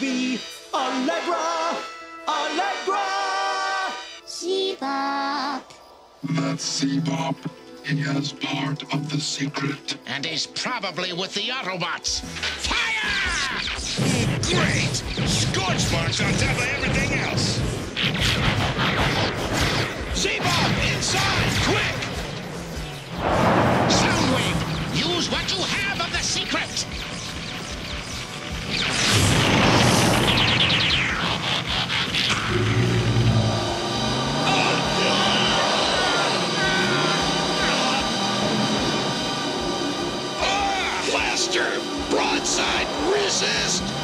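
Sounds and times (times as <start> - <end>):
dramatic background music: 0.0 - 44.0
explosion booms: 23.2 - 26.0, 29.0 - 30.5
laser blaster zaps: 23.2 - 33.2.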